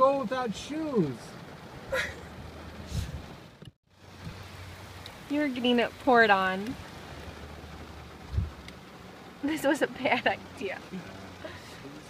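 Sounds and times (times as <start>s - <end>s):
heavy rain on a car: 0.0s - 12.0s
dull low thump: 8.2s - 8.7s.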